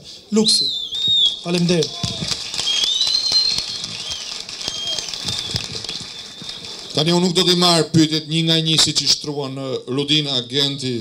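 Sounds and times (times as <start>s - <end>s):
audience clapping: 1.5s - 7.6s.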